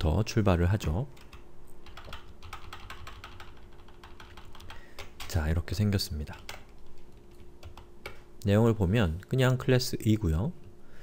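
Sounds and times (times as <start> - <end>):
keyboard typing: 1.2 - 5.4, 6.3 - 8.2.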